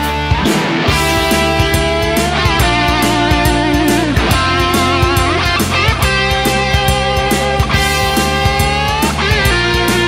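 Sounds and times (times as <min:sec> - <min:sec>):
bass: 0:00.0 - 0:10.0
electric guitar lead line: 0:00.0 - 0:10.0
steady drum beat: 0:00.0 - 0:10.0.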